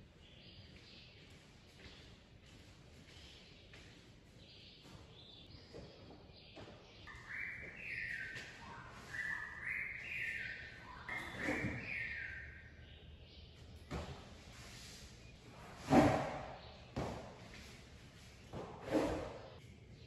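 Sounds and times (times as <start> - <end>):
bird singing: 0.0 - 2.2, 3.1 - 14.4, 16.2 - 20.0.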